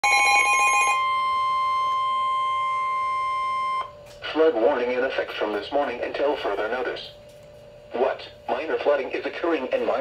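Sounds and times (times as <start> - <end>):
steady high alarm tone: 0.0 - 4.0.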